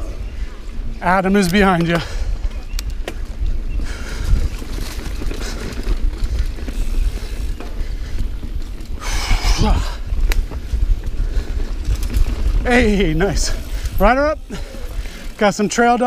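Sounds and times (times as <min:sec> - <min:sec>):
bike tyres rumbling on dirt: 0:00.0 - 0:16.0
wind buffeting microphone: 0:00.0 - 0:16.0
bike clicking: 0:00.1 - 0:16.0
hissing rush: 0:09.0 - 0:10.2.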